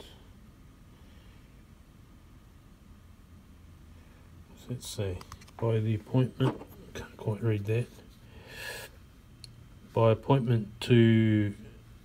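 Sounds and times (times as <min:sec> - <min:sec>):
intake of breath: 0:08.2 - 0:09.0.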